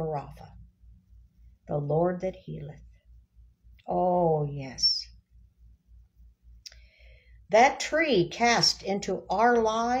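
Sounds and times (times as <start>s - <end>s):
breath in: 6.7s - 7.4s.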